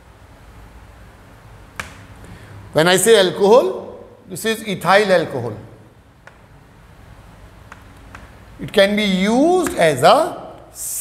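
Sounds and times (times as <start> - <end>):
chalk tap: 9.6 - 9.8.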